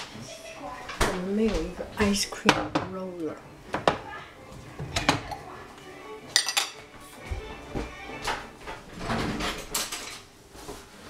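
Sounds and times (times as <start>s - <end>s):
metal utensil clinking on dishware: 6.3s - 6.8s.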